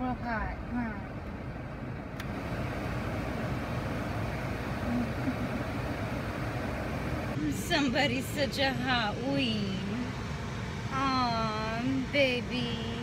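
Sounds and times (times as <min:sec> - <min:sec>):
car cabin engine noise: 0:00.0 - 0:13.0.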